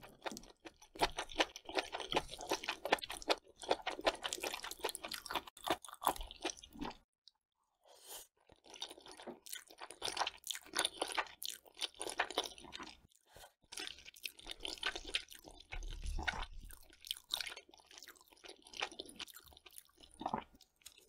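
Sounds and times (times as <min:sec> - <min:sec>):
chewing and crunching food: 0:00.0 - 0:07.4, 0:08.2 - 0:21.0.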